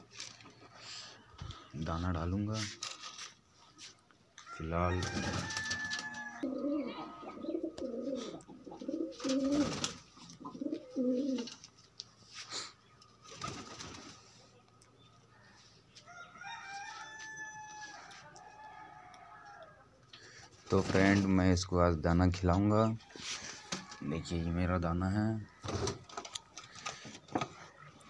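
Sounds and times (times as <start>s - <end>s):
pigeons cooing: 6.3s - 11.6s.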